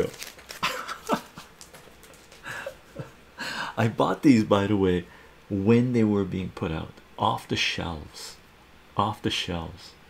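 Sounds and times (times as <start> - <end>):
man laughing softly: 0.5 - 3.7.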